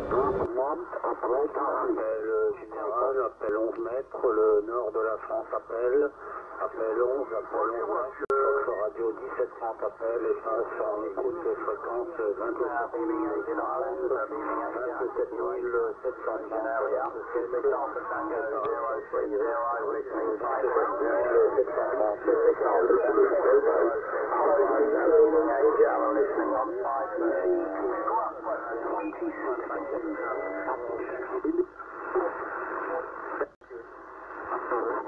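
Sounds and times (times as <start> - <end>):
voices over radio speaker: 0.0 - 35.0.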